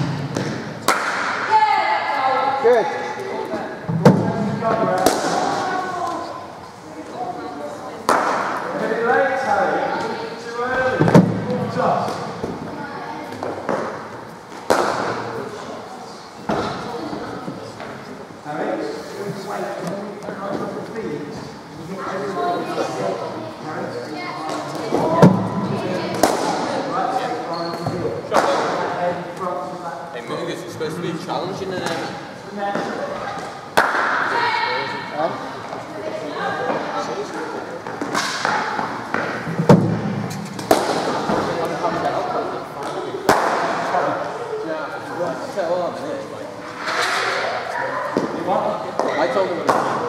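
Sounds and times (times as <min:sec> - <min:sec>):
faint voices in a hall: 0:00.0 - 0:50.0.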